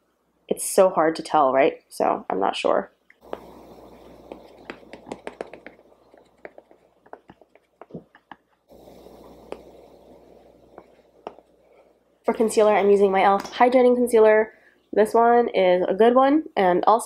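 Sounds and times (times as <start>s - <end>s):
makeup sponge tapping: 3.2s - 8.6s, 10.7s - 11.5s.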